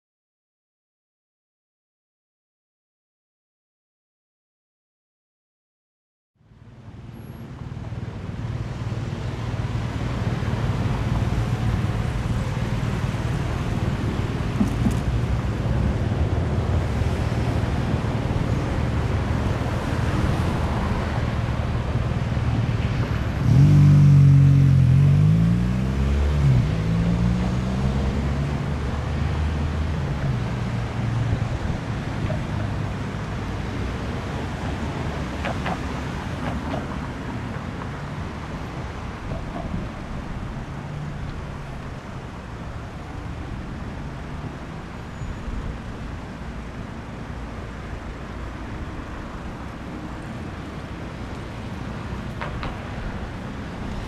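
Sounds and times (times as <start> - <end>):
low hum of traffic: 6.4 - 54.0.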